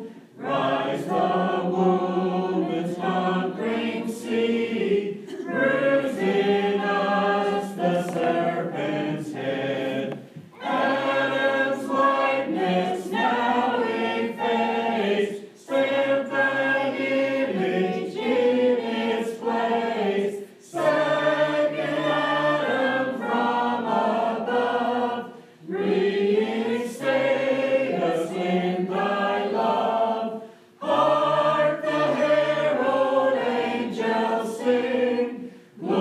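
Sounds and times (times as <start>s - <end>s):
mixed choir singing a hymn: 0.0s - 36.0s.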